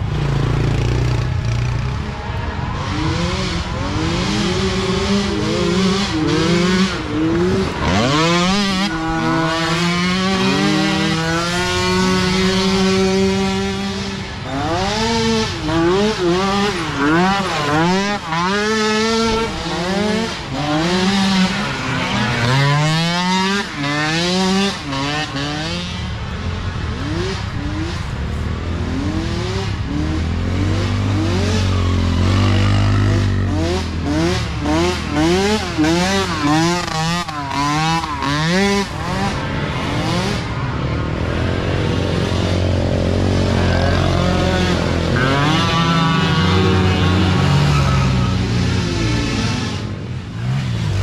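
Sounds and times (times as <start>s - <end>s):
small atv engines revving: 0.0s - 51.0s.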